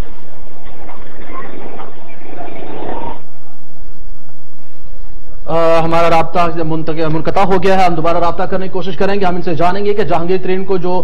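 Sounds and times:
crackling garbled telephone line: 0.0 - 3.4.

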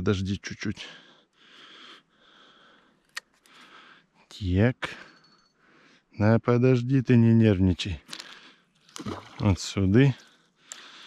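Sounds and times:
person breathing close: 0.8 - 4.3, 10.2 - 11.0.

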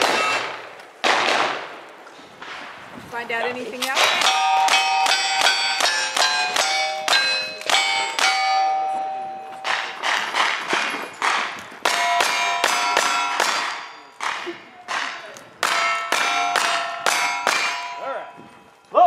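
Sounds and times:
rifle shots: 0.0 - 1.8
steel target plate ringing: 4.0 - 19.0.

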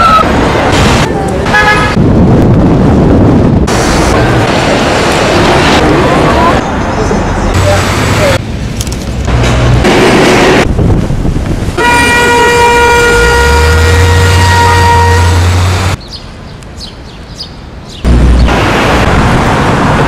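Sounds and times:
street traffic: 0.0 - 20.0
voices outdoors: 1.0 - 1.9, 5.5 - 9.2
car horn toot: 11.8 - 15.5.

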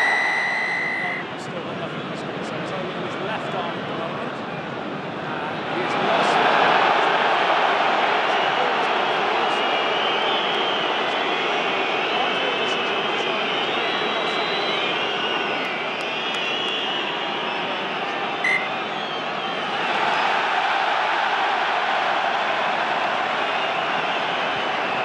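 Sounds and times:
shrill wavering whistles: 0.0 - 1.3, 18.4 - 19.2
stadium crowd roaring: 5.4 - 25.0.

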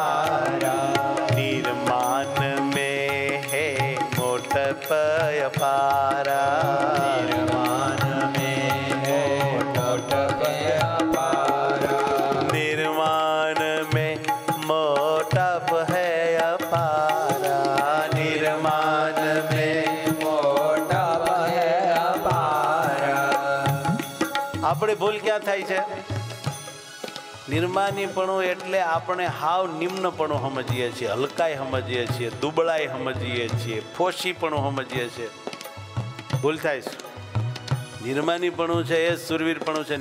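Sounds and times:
instrumental accompaniment: 0.0 - 40.0
man singing devotional melody: 0.0 - 40.0.

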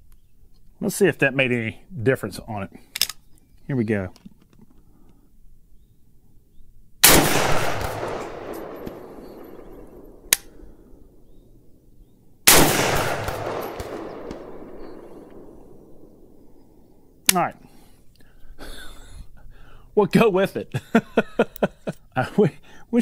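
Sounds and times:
man speaking: 0.8 - 2.8, 3.7 - 4.2, 17.3 - 17.6, 20.0 - 20.8, 22.2 - 23.0
rifle shots echoing: 7.0 - 11.4, 12.4 - 17.2.

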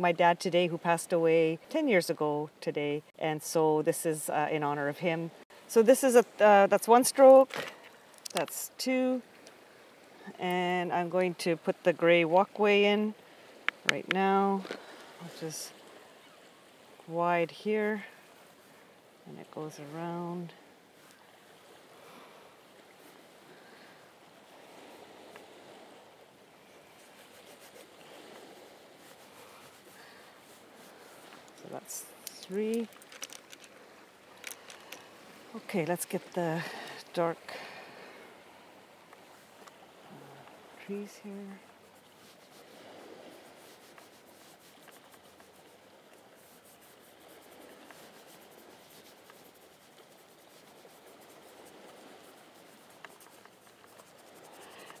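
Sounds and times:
low steady background hiss: 0.0 - 55.0
wind: 0.0 - 55.0
surf washing: 3.8 - 55.0.

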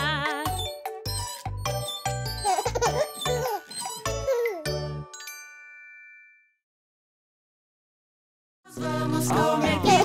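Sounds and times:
bright bell-like chime: 1.7 - 6.6.

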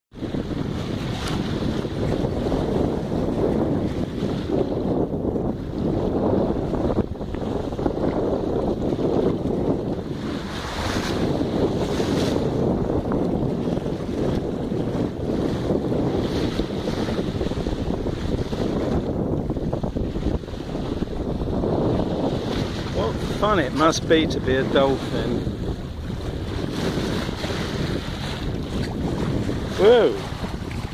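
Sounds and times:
water washing along boat hull: 0.1 - 30.9
wind rushing over microphone: 0.1 - 30.9.

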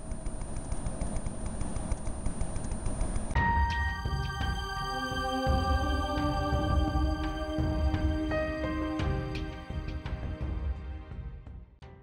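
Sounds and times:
high-pitched whine: 0.0 - 10.4
low rumble: 3.3 - 11.6.

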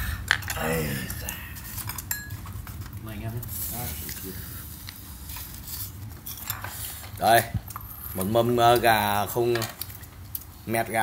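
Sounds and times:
dishes and cutlery clinking: 1.7 - 2.9.

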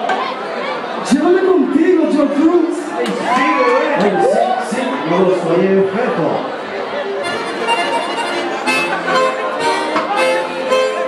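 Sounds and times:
accordion playing fast notes: 7.2 - 11.0.

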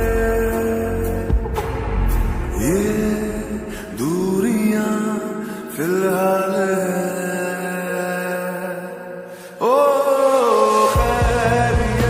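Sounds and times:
man singing with reverb: 0.0 - 12.0.

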